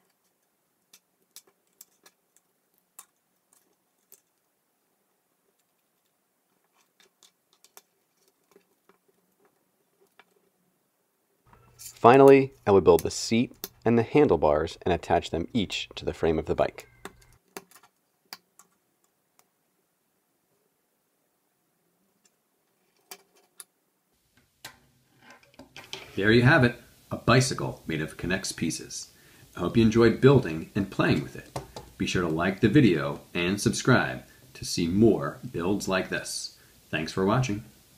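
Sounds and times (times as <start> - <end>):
plastic pieces clicking together: 0.0 - 4.4, 17.0 - 18.8
small plastic rattles: 0.0 - 4.5, 5.5 - 10.5.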